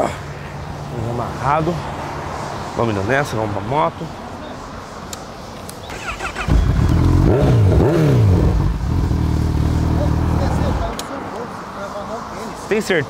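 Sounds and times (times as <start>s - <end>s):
motorcycle engine revving: 5.9s - 11.0s.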